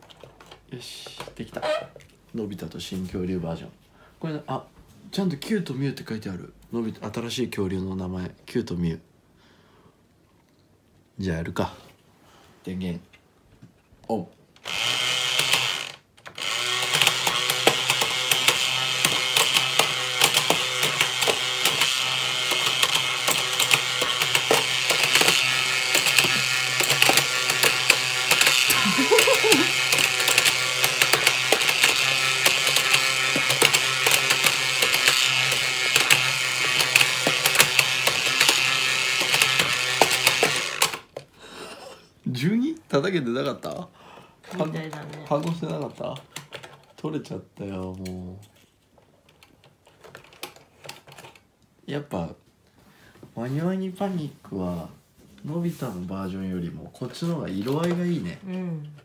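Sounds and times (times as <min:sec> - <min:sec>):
toy motor whirring and clicking: 0:14.6 - 0:41.2, 0:44.5 - 0:46.9.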